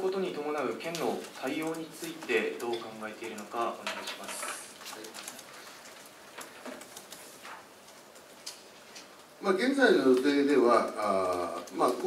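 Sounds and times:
papers and objects handled: 0:00.8 - 0:09.3.

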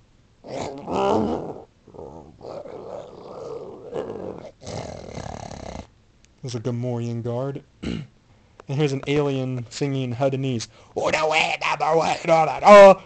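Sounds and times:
man growling and grunting: 0:00.5 - 0:05.9.

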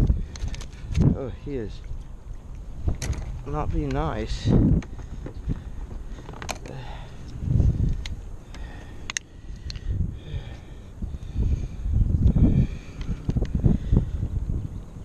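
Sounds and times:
sharp clicks: 0:06.5 - 0:09.8.

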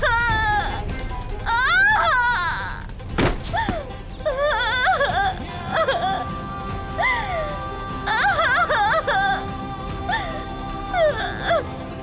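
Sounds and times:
dramatic background score: 0:00.0 - 0:12.0
sudden thud: 0:03.1 - 0:03.5
wavering vocal line: 0:04.3 - 0:12.0.

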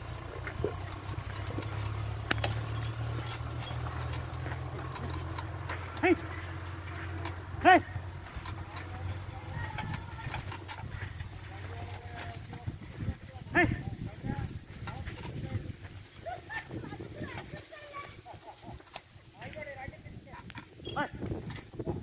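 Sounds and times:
implement rattling in soil: 0:00.0 - 0:22.0
man shouting hey: 0:07.6 - 0:08.0.

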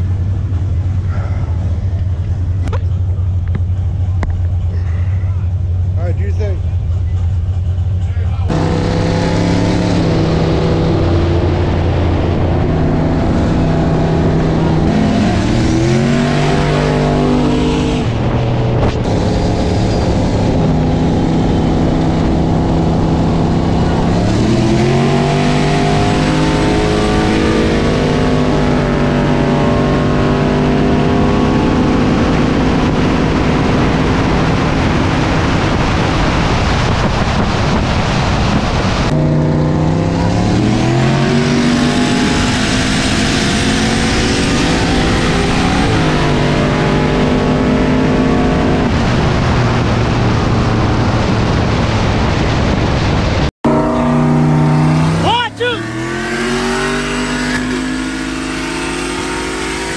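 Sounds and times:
car engine accelerating hard: 0:00.0 - 0:59.9
wind and road noise: 0:00.0 - 0:59.9.

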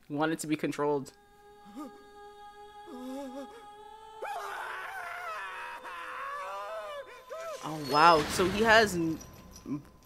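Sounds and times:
high wavering voice wailing: 0:01.1 - 0:08.2.

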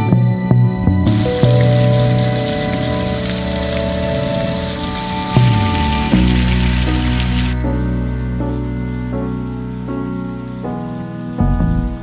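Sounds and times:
fountain water splashing: 0:01.1 - 0:07.6.

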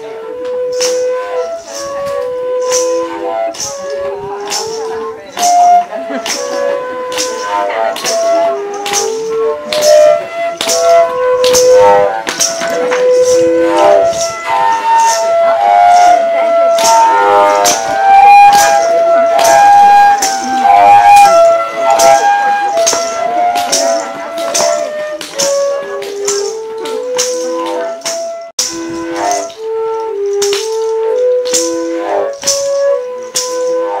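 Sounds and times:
long flutes playing together: 0:00.0 - 0:34.0
rattle steady beat: 0:00.0 - 0:34.0.

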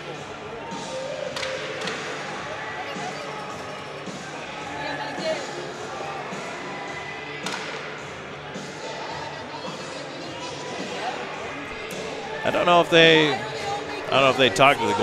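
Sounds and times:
crowd chatter: 0:00.0 - 0:15.0
faint music: 0:00.0 - 0:15.0.

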